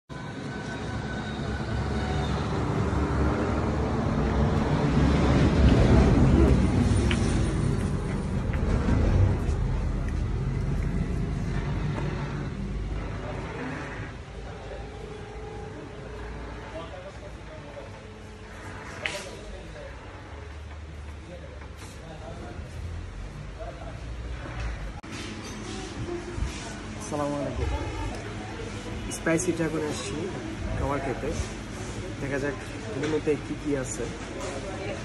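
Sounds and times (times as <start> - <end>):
road traffic noise: 0.1 - 35.0
vehicle passing by: 1.6 - 14.6.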